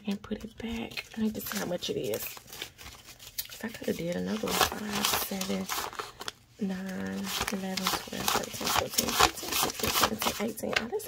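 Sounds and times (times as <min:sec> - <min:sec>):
paper bills rustling and snapping: 0:00.0 - 0:11.0.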